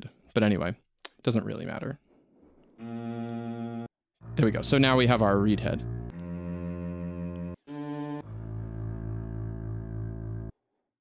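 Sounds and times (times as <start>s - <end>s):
low sustained sampled tone: 4.2s - 7.6s.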